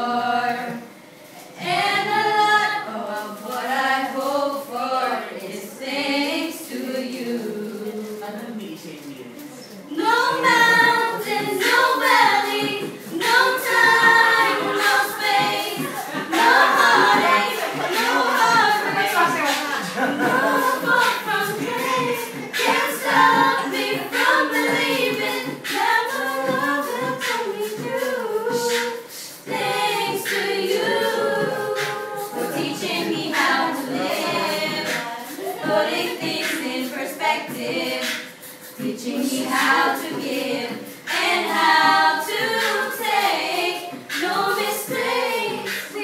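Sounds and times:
children and adults singing: 0.0s - 8.4s, 9.9s - 46.0s.

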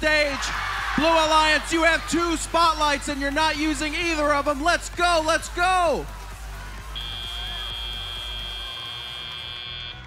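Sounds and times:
high-pitched buzzer tone: 7.0s - 10.0s.

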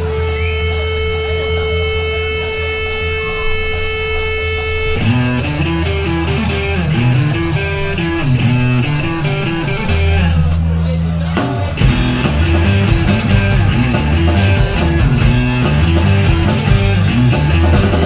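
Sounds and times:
rock band playing: 0.0s - 18.0s.

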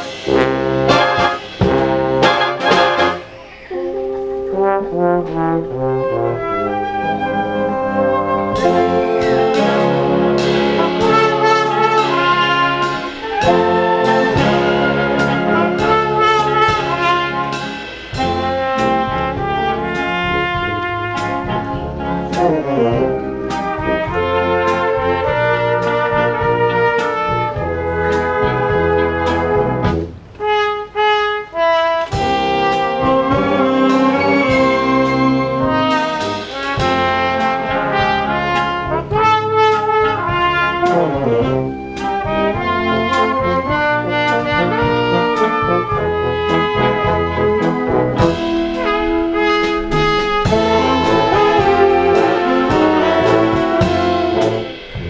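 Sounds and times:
brass: 0.0s - 55.0s
flutes clarinets and saxophones: 0.0s - 55.0s
percussion beat: 32.1s - 55.0s.

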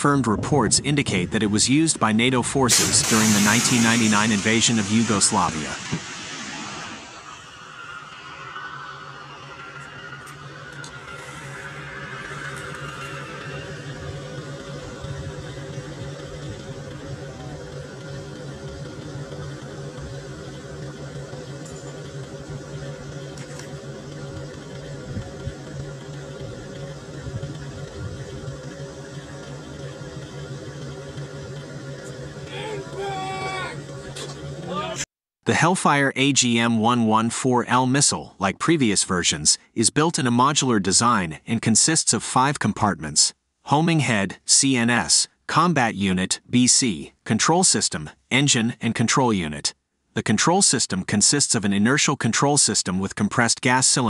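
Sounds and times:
low engine hum: 0.0s - 35.0s.

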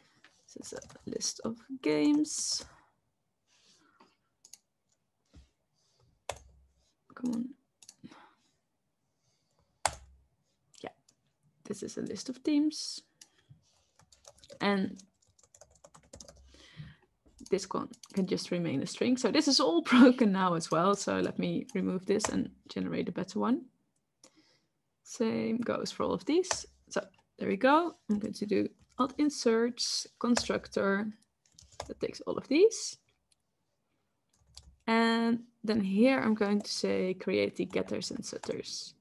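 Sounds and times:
rapid keyboard typing: 0.6s - 1.4s, 6.2s - 6.6s, 13.2s - 16.6s, 17.4s - 18.4s, 20.6s - 22.5s, 30.2s - 30.8s, 31.4s - 32.0s, 34.3s - 34.8s, 37.6s - 38.8s.

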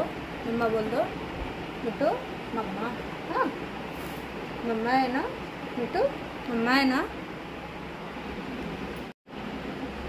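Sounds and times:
woman speaking: 0.0s - 1.2s, 1.8s - 3.6s, 4.6s - 7.2s.

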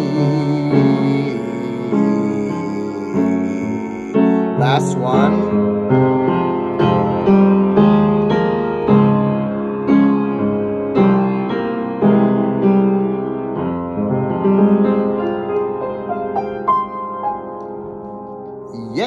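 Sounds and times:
keyboard piano chords: 0.0s - 19.0s.

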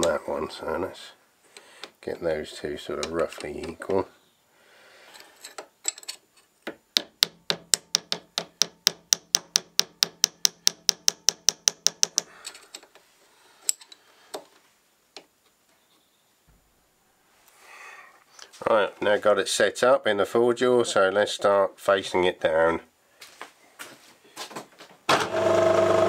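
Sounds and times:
hammer tapping on metal: 7.0s - 12.3s.

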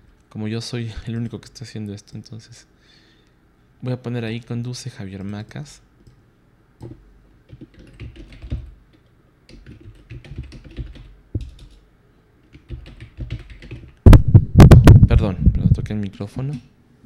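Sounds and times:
typing on computer keyboard: 6.8s - 11.8s, 12.4s - 14.0s.

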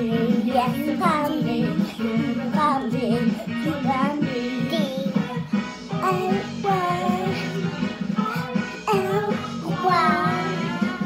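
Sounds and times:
child singing: 0.0s - 11.0s
children's song backing music: 0.0s - 11.0s.

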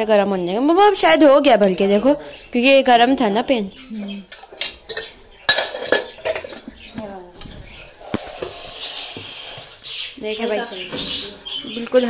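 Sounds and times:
metal spoon clinking on pots: 4.3s - 6.7s.

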